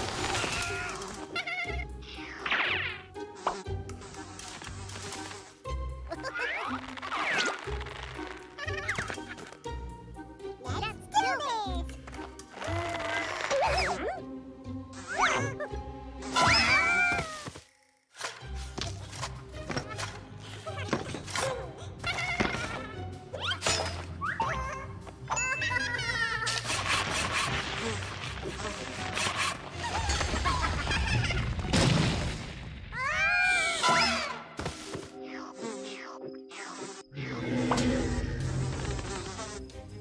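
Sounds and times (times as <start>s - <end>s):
soft background music: 0.0s - 17.4s.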